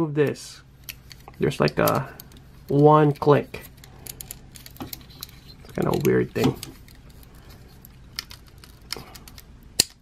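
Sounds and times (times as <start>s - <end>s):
small plastic parts clicking: 0.8s - 10.0s.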